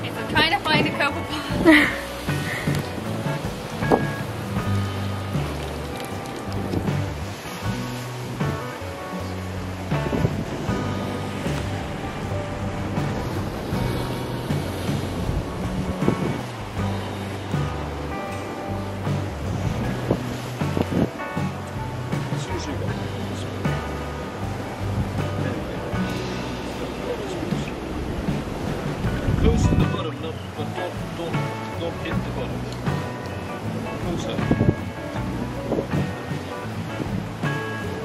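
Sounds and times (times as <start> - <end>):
background music with bass line: 0.0 - 38.0
waves breaking: 0.0 - 38.0
wind: 0.0 - 38.0.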